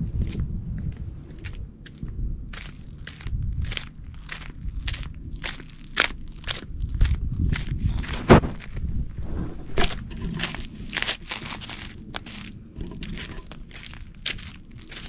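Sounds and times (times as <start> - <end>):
footsteps crunching on gravel: 0.0 - 15.0
low rumble: 0.0 - 15.0.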